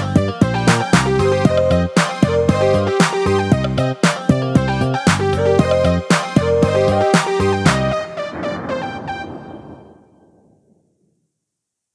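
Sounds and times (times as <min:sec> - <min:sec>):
karaoke backing track: 0:00.0 - 0:09.4.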